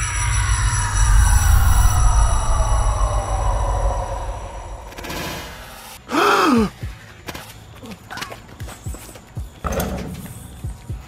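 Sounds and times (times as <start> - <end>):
loud vocal cry: 6.1 - 6.7
music beat: 6.6 - 9.6, 10.2 - 11.0.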